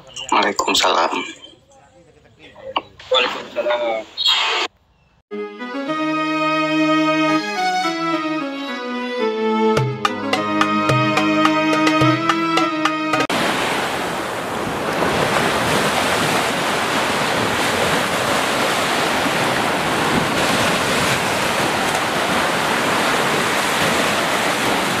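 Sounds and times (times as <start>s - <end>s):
ocean surf breaking: 10.0s - 25.0s.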